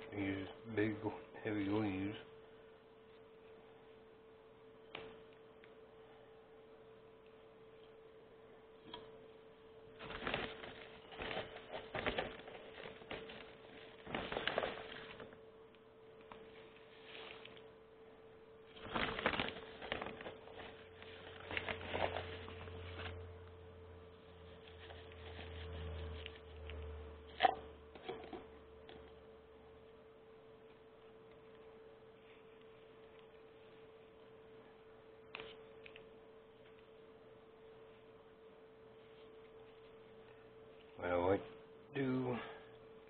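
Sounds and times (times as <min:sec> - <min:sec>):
steady electrical hum: 0:00.0 - 0:43.0
crackling of soil and plastic: 0:10.0 - 0:15.4, 0:18.7 - 0:23.2
rustling and scraping of soil: 0:16.4 - 0:17.7, 0:24.4 - 0:26.7.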